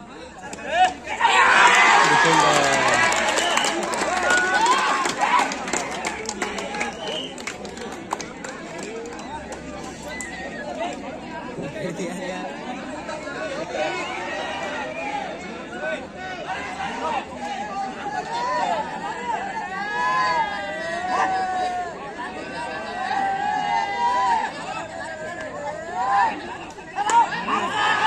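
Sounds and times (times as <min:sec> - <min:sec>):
crowd chatter: 0:00.0 - 0:28.0
crowd shouting: 0:00.4 - 0:07.3, 0:12.6 - 0:28.0.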